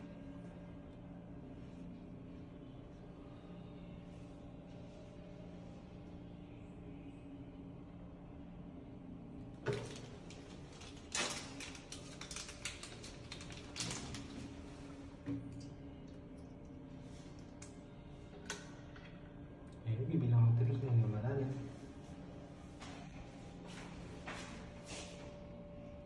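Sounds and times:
steady low hum: 0.0 - 26.0
small objects clicking and rustling: 9.8 - 14.3.

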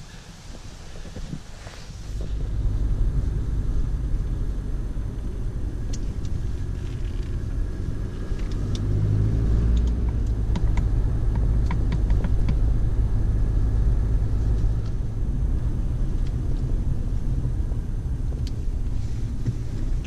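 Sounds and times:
car engine and tyres rumbling: 0.0 - 20.0
faint light ticks: 5.8 - 7.5, 8.3 - 9.0, 9.6 - 12.7, 14.5 - 15.0, 16.1 - 16.8, 18.3 - 19.6.

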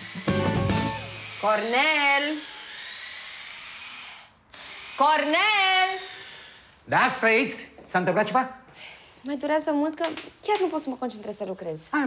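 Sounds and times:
power tool running: 0.0 - 6.9.

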